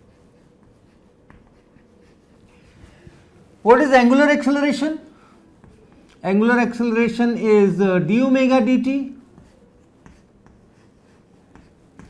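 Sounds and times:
chalk scratching on chalkboard: 0.0s - 3.7s, 5.5s - 7.2s, 8.4s - 12.0s.

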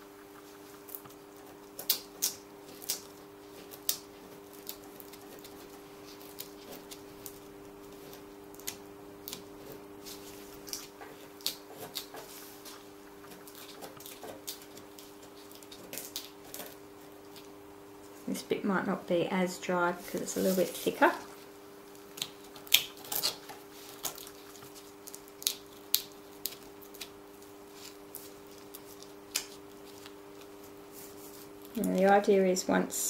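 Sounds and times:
steady hum: 0.0s - 33.0s.

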